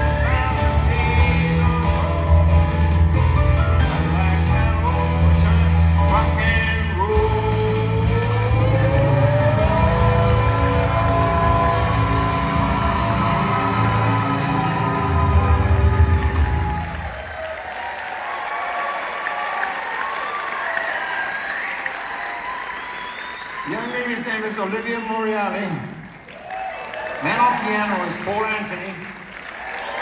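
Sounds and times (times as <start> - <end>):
live rock and roll band: 0.0 - 17.3
audience applauding: 8.4 - 30.0.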